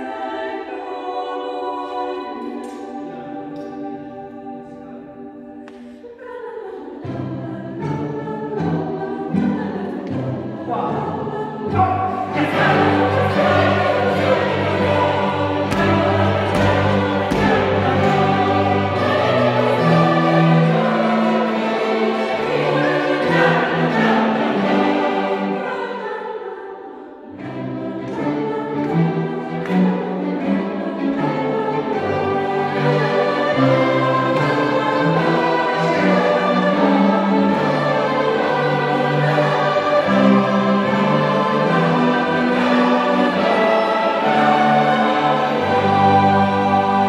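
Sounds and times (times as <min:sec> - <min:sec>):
mixed choir singing: 0:00.0 - 0:47.0
string orchestra: 0:00.0 - 0:47.0.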